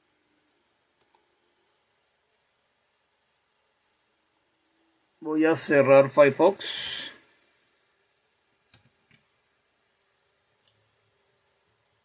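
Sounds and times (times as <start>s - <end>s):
faint clicks: 1.0s - 1.4s, 10.6s - 11.0s.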